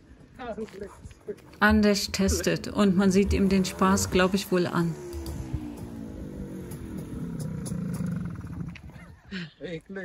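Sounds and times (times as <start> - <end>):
motorcycle engine slowing: 1.6 - 9.3
man talking: 2.1 - 2.6.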